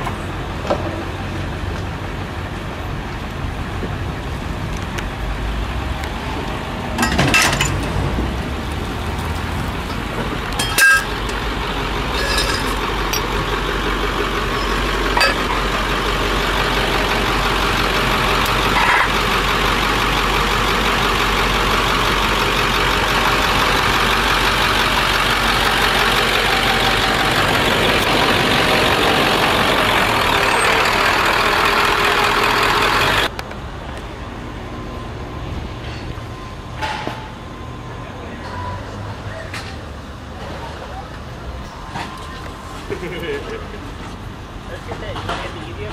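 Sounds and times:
truck engine running: 0.0s - 45.9s.

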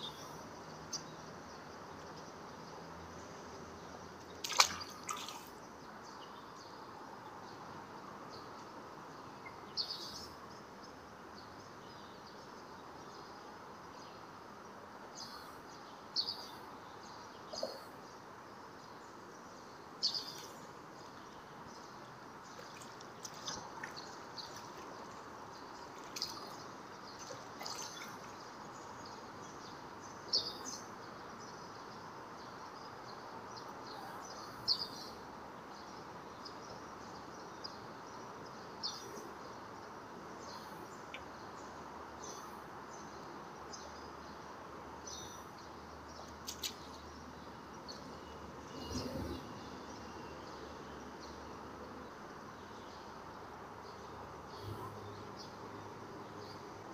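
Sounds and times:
small birds chirping: 0.0s - 56.9s.

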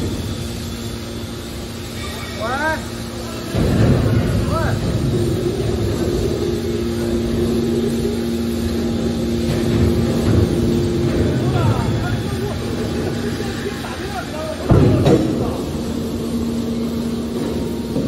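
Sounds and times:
hydraulic power unit two-note hum: 0.0s - 18.0s.

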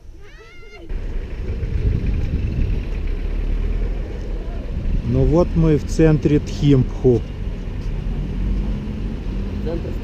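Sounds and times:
car traffic: 0.0s - 10.0s
heavy low rumble: 0.9s - 8.0s.

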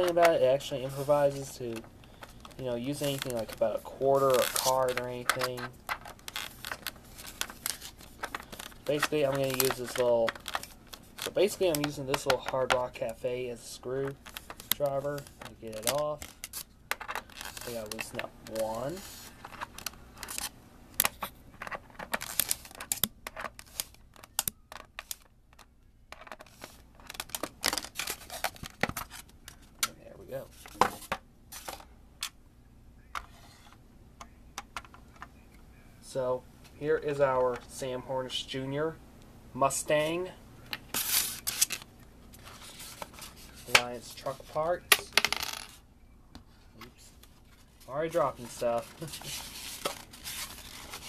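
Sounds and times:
plastic wrapping crinkling: 2.1s - 13.1s, 14.1s - 20.5s, 47.4s - 51.0s.

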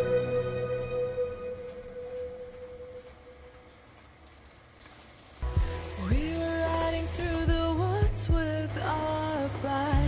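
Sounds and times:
song playing: 0.0s - 3.0s
background music: 0.0s - 3.4s, 5.4s - 10.0s
onions sizzling in a pot: 3.8s - 7.5s.

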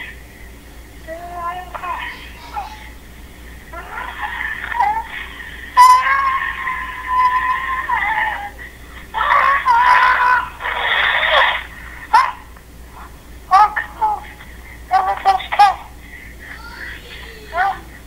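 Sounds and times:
high-pitched wavering vocal calls: 1.1s - 3.0s, 3.7s - 12.5s.

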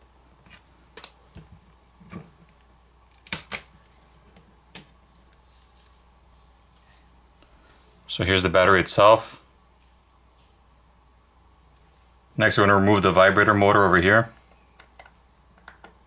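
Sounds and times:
fingers clicking and tapping phone: 14.5s - 16.0s.

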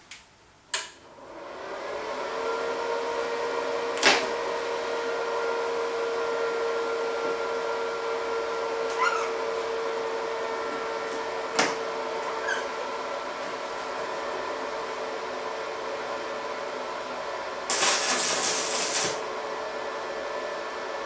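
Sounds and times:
welding machine fan humming: 17.1s - 19.8s.

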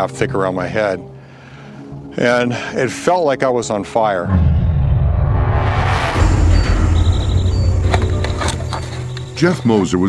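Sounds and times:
low rumble: 4.2s - 9.3s.

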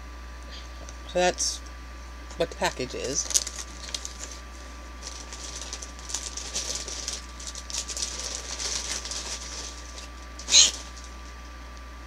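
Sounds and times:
plastic wrapper crinkling: 3.0s - 11.2s.

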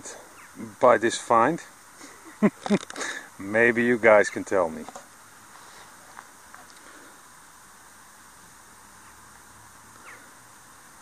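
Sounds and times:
faint background hiss: 0.0s - 11.0s.

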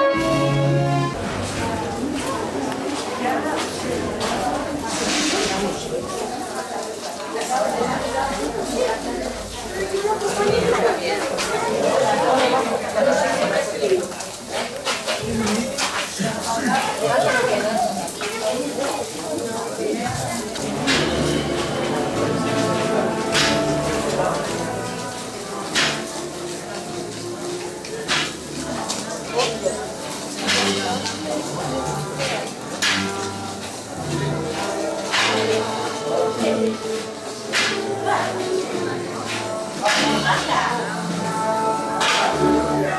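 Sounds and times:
loud percussion strikes: 0.0s - 2.7s, 20.6s - 26.3s, 30.3s - 35.8s, 39.2s - 42.8s
held wind instrument notes: 0.0s - 6.5s, 20.4s - 42.9s
crowd voices: 0.0s - 42.9s.

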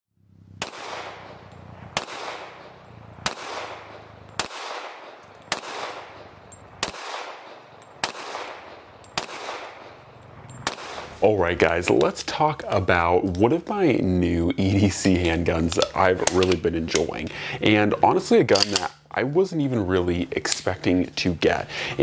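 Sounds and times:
pistol shots with echo: 0.6s - 11.2s.

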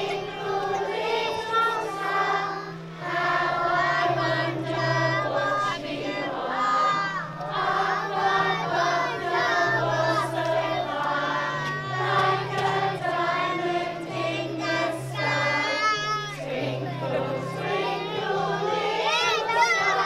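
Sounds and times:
group singing with children: 0.0s - 20.0s.

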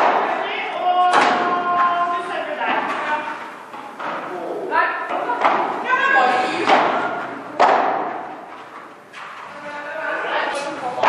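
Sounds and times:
padel rackets striking ball: 0.0s - 0.4s, 1.1s - 1.9s, 5.2s - 9.2s.

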